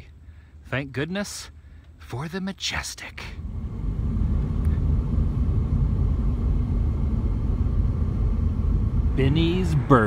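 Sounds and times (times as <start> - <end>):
road and engine noise in car: 0.0 - 10.0.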